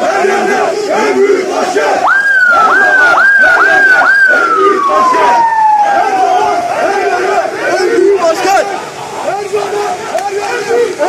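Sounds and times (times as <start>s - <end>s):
crowd shouting: 0.0s - 11.0s
siren wailing: 2.0s - 7.5s.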